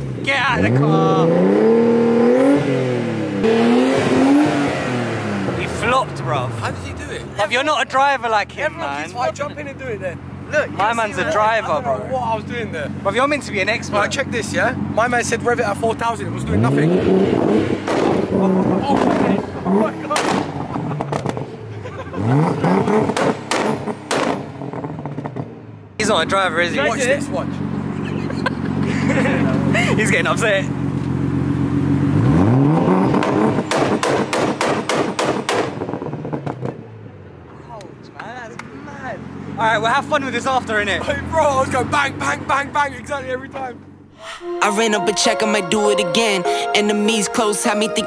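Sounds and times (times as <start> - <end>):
car engine revving hard: 0.0 - 6.6, 14.2 - 25.6, 31.2 - 36.8
exhaust bang: 16.5 - 21.6, 22.5 - 25.6, 32.8 - 36.8.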